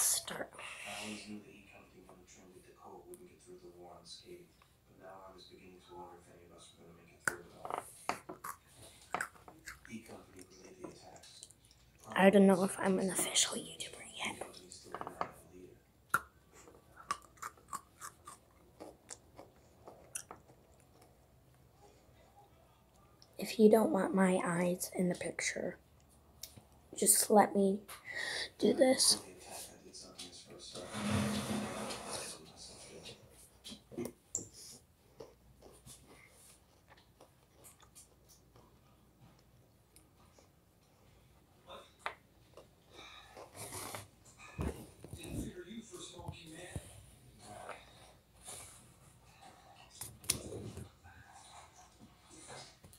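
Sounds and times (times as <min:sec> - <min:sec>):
child chewing crunchy snack: 0:16.7 - 0:21.2, 0:35.2 - 0:38.8
close breathing: 0:28.0 - 0:28.6.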